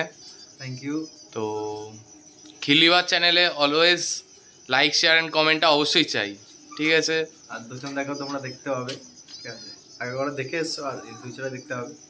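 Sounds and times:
crickets chirring: 0.0s - 12.0s
man talking: 2.6s - 12.0s.

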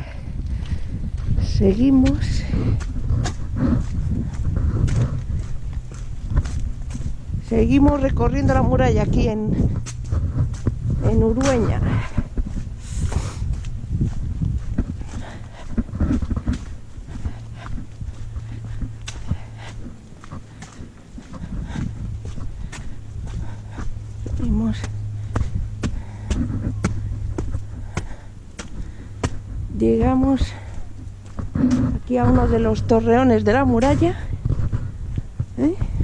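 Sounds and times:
footsteps on stone: 0.0s - 36.0s
wind buffeting microphone: 0.0s - 36.0s.

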